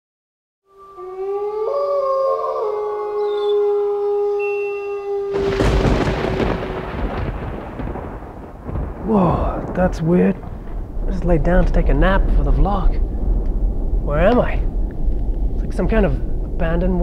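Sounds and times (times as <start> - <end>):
eerie held tones: 0.7 - 7.2
loud rumbling crash: 5.3 - 17.0.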